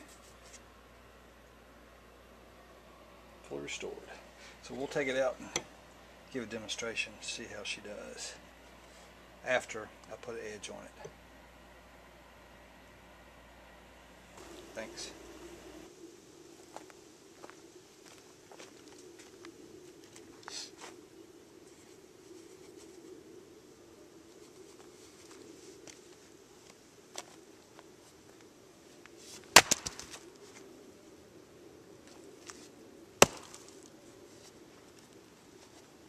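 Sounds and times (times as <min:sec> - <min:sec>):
log splitting: 0:29.3 - 0:30.3, 0:33.2 - 0:34.0
axe chopping into log: 0:29.5 - 0:30.2, 0:33.2 - 0:33.7.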